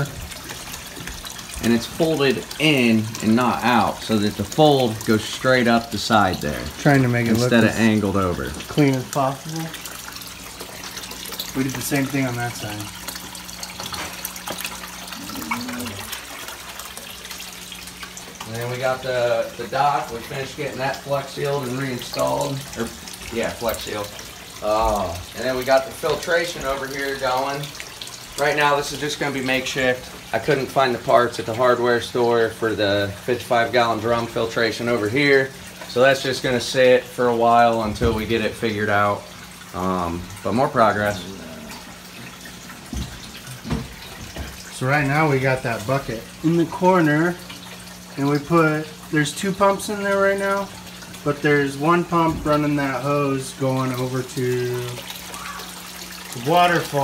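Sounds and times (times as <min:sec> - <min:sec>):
low pump hum: 0:00.0 - 0:57.0
pond water splashing and trickling: 0:00.0 - 0:57.0.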